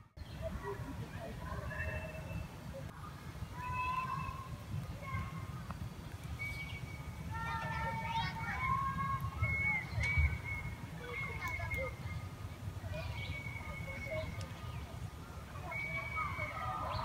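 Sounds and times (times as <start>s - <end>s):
distant children chattering: 0.1s - 17.0s.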